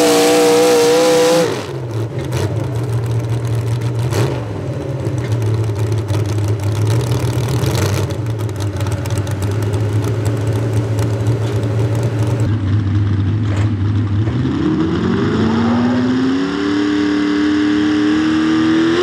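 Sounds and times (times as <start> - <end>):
truck engine idling: 2.0 - 14.2.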